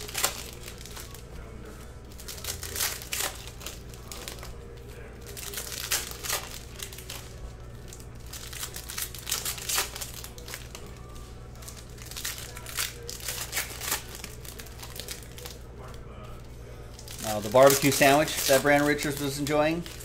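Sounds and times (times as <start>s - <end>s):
foil wrappers crinkling and tearing: 0.0s - 20.0s.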